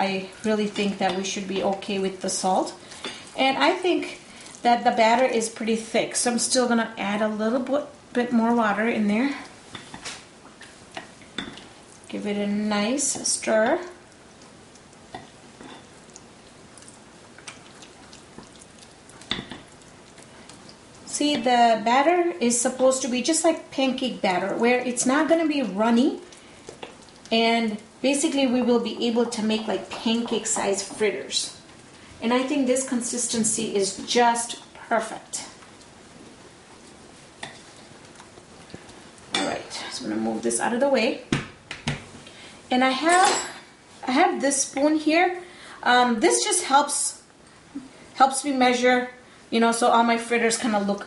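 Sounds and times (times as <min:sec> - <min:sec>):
faint steady hiss: 0:00.0 - 0:51.0.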